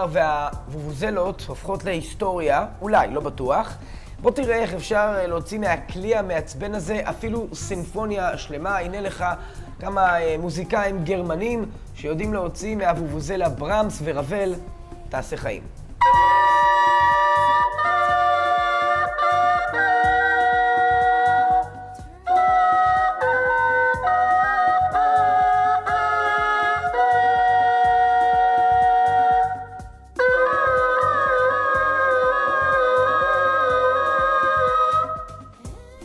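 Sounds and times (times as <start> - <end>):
vuvuzelas playing a melody: 16.0 - 35.7.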